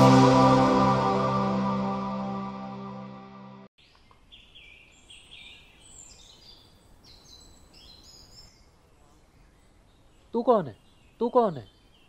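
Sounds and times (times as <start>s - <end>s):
title music: 0.0s - 3.7s.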